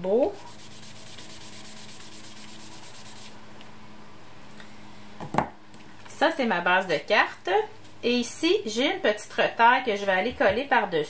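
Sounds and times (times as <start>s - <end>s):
sponge scrubbing on cardstock: 0.4s - 3.4s.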